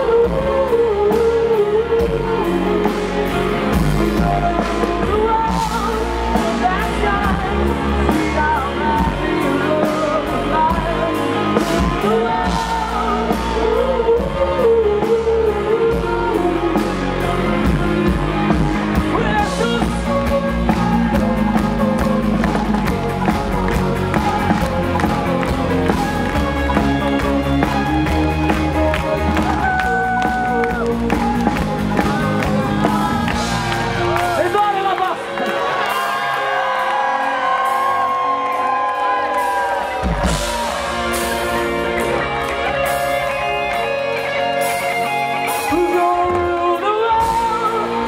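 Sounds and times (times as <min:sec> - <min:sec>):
rock band playing live: 0:00.0 - 0:48.0.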